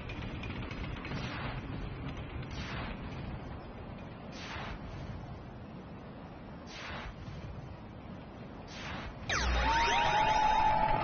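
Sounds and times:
game show falling sweep effect: 0:08.8 - 0:11.0.

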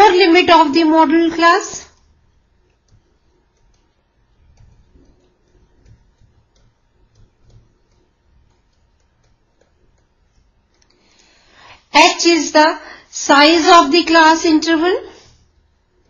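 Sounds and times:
low steady hum: 0:00.0 - 0:16.0
stylus ticking on pen tablet: 0:01.9 - 0:11.4.

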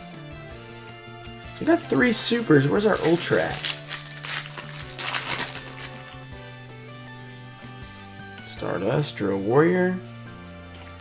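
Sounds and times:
background music with held notes: 0:00.0 - 0:11.0
foil wrapper crinkling: 0:01.5 - 0:06.4.

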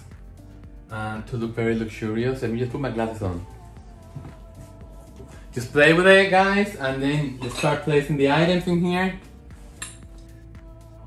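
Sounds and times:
glass vessels clinking: 0:07.4 - 0:07.9.

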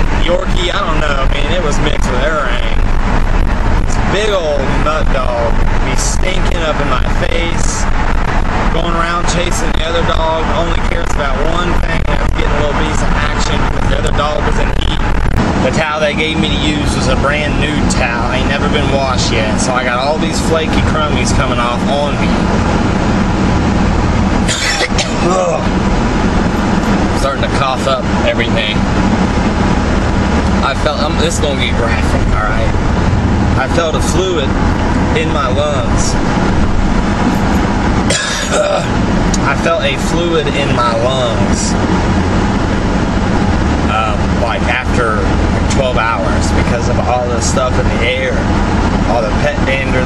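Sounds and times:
man talking: 0:00.0 - 0:02.9, 0:03.8 - 0:07.9, 0:08.7 - 0:15.0, 0:15.6 - 0:22.6, 0:24.7 - 0:25.8, 0:27.1 - 0:28.9, 0:30.4 - 0:32.8, 0:33.5 - 0:36.2, 0:38.1 - 0:41.8, 0:43.8 - 0:50.0
truck engine and road rumble: 0:00.0 - 0:50.0
person coughing: 0:24.5 - 0:25.6, 0:38.1 - 0:38.9.

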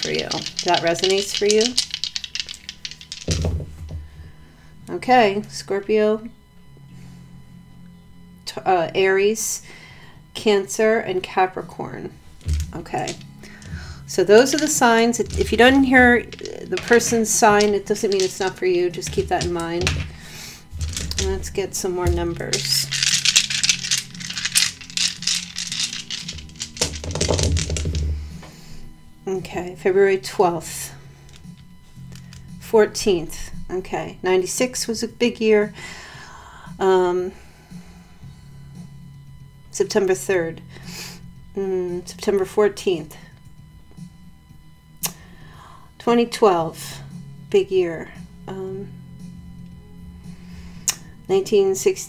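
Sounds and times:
small hard objects rattling: 0:00.0 - 0:04.0, 0:12.4 - 0:28.2
dice clattering: 0:00.0 - 0:04.1, 0:12.4 - 0:28.2
soft background music: 0:00.0 - 0:52.0.

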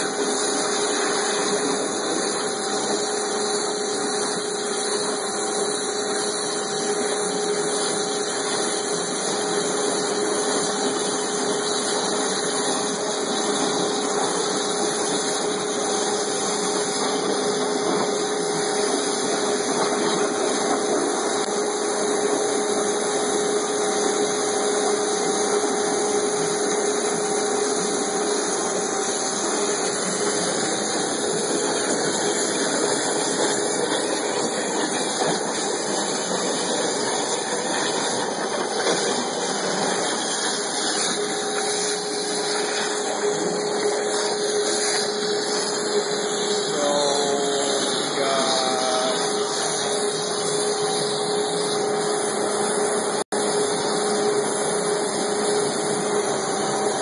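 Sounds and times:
high-pressure water jet hissing: 0:00.0 - 0:57.0.

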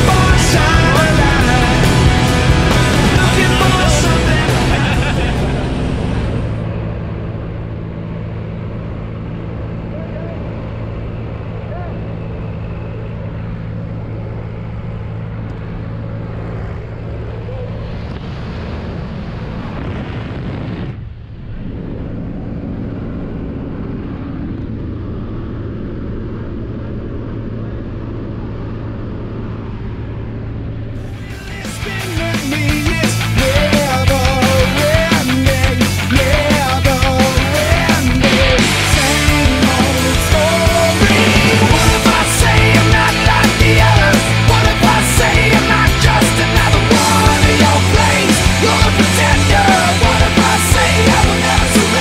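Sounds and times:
light aircraft engine droning: 0:00.0 - 0:52.0.

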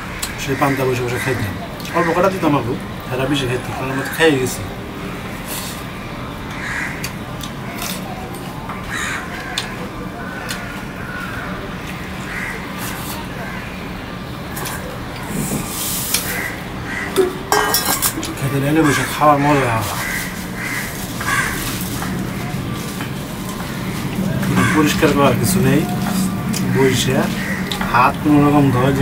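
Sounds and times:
bird calling: 0:14.7 - 0:29.0.

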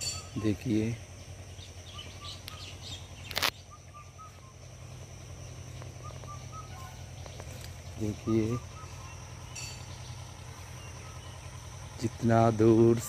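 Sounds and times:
birds chirping: 0:00.0 - 0:13.0
low hum: 0:00.0 - 0:13.0
thin high tone: 0:04.1 - 0:13.0.

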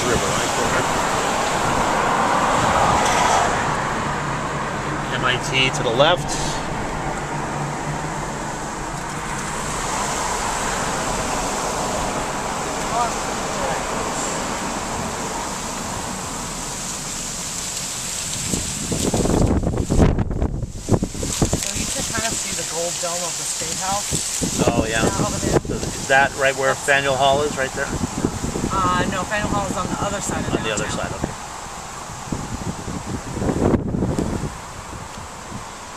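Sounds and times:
car road and wind noise: 0:00.0 - 0:35.9
low rumble with buffeting: 0:00.0 - 0:35.9.

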